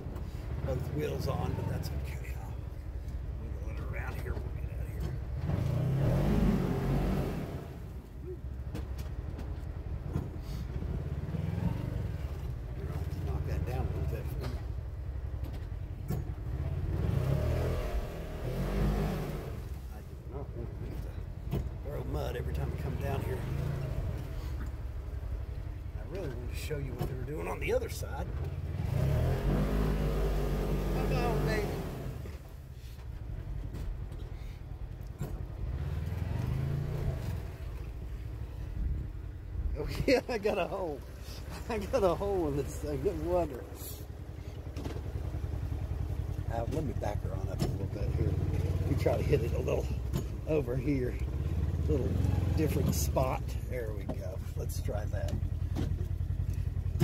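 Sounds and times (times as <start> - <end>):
utility vehicle engine running: 0.0 - 57.0.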